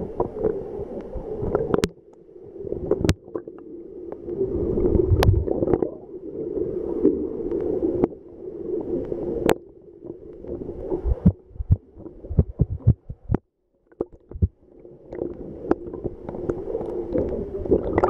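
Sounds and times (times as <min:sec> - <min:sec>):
muffled underwater rushing gurgle: 0:00.0 - 0:18.0.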